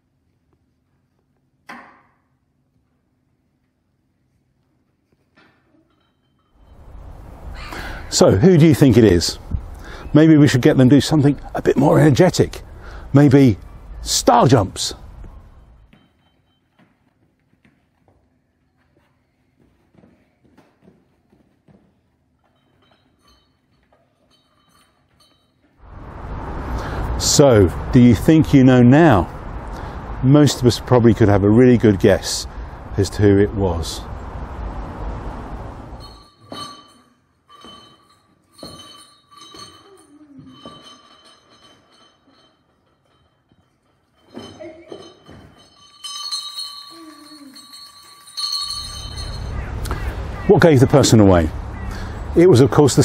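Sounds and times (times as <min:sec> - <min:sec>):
outdoor background rush: 0:06.6 - 0:16.1, 0:24.3 - 0:53.0
small bell jingling in a box: 0:22.4 - 0:25.8, 0:36.0 - 0:49.6.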